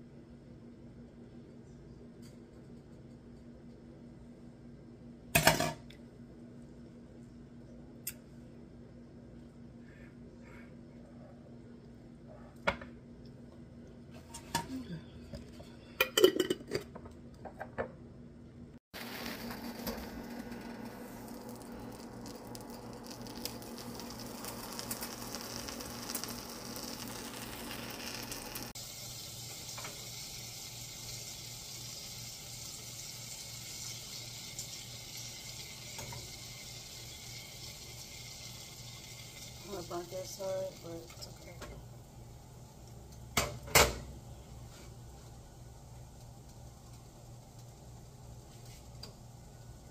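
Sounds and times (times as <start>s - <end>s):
sandwich sizzling in a frying pan: 19.0s - 49.9s.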